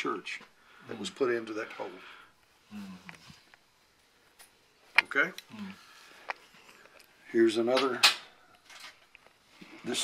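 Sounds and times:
man talking: 0.0 - 2.1.

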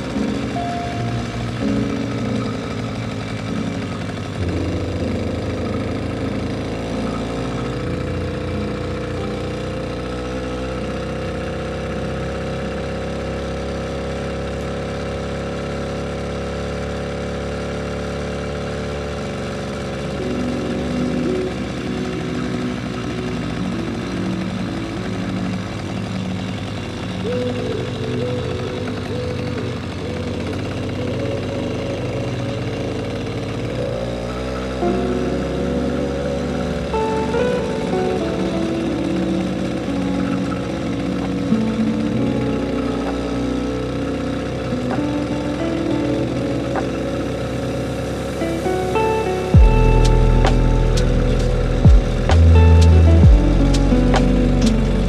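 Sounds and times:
small motorbike engine running: 0.0 - 55.0.

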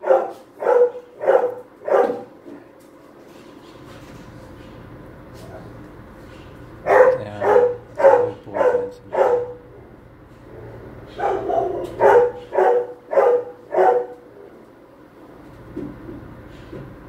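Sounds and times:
dog barking: 0.0 - 2.3, 6.8 - 9.7, 11.1 - 14.6.

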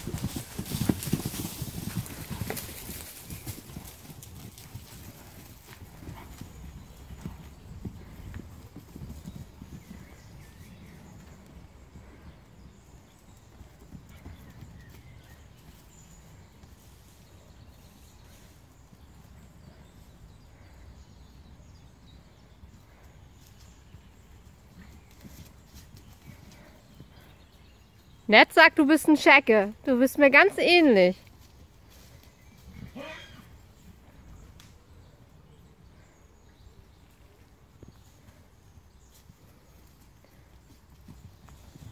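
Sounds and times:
horse hooves on grass: 0.0 - 41.9
faint horse call: 32.8 - 33.6.

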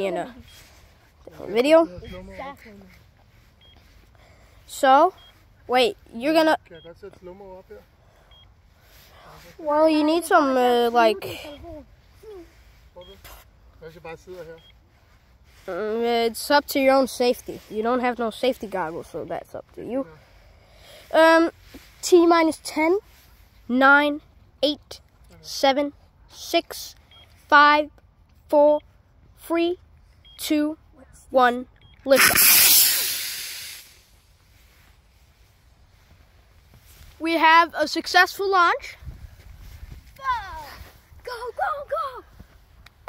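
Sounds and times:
rocket motor hissing: 32.1 - 34.2.

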